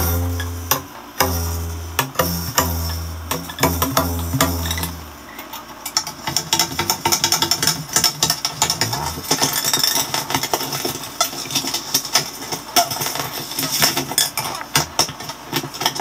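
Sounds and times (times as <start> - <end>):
metallic string instrument strummed: 0.0 - 5.5.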